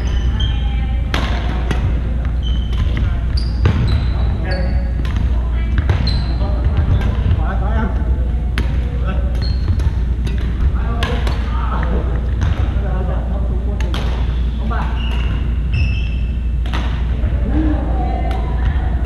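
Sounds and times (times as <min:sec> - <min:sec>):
sneakers squeaking on court: 0:00.0 - 0:07.4, 0:09.2 - 0:10.7, 0:14.2 - 0:17.0
steady low hum: 0:00.0 - 0:19.0
racket hitting shuttlecock: 0:01.1 - 0:04.0, 0:13.8 - 0:14.4, 0:16.6 - 0:17.1.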